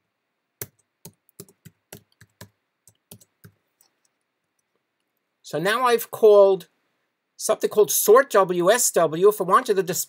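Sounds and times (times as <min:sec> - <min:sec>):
typing on computer keyboard: 0:00.6 - 0:04.0.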